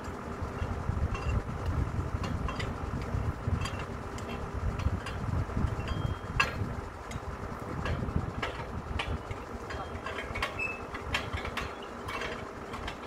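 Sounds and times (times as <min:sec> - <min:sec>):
drilling rig engine running: 0:00.0 - 0:13.0
knocks and clicks of steel pipes: 0:00.6 - 0:13.0.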